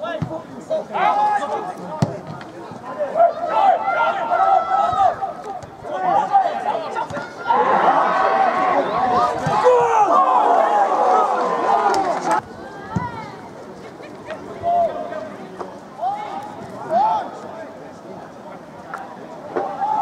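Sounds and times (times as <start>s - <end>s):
crowd shouting: 2.9s - 12.4s.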